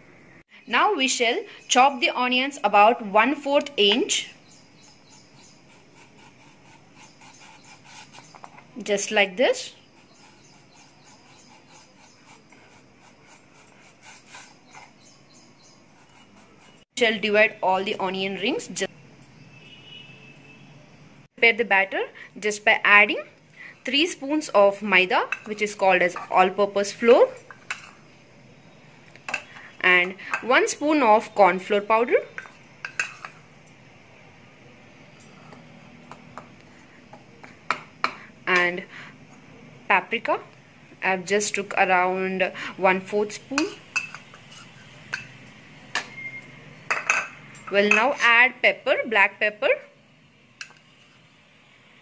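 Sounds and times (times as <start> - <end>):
knife slicing onion on wooden board: 5.2 - 8.5, 9.9 - 14.8
metal spoon clinking on bowl: 25.3 - 26.4, 32.3 - 33.4, 43.6 - 48.2.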